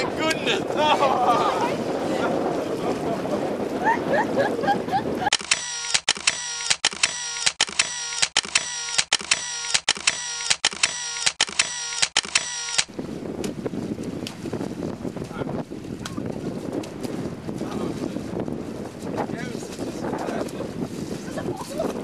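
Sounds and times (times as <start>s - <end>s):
wind on microphone: 0.0s - 5.3s, 12.9s - 22.0s
camera shutter clicking: 5.3s - 12.9s.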